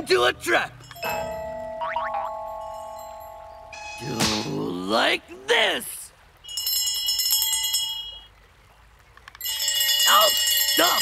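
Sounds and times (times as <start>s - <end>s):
handbells ringing: 0.8s - 4.1s, 6.4s - 8.3s, 9.4s - 11.0s.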